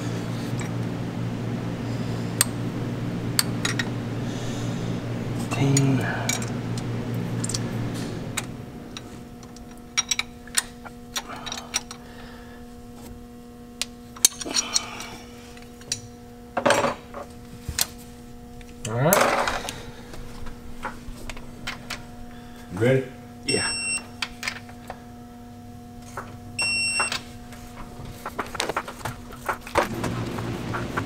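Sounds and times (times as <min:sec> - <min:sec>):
steady hum: 0:00.0 - 0:31.0.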